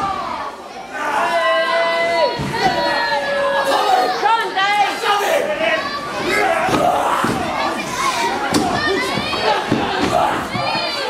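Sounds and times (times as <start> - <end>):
crowd shouting and yelling: 0.0 - 11.0.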